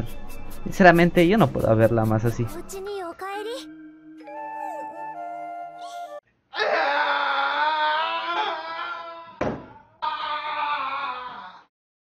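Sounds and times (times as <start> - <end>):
soft soundtrack music: 0.0 - 6.2
person wailing in grief: 6.5 - 9.4, 10.0 - 11.7
thump: 9.4 - 9.8.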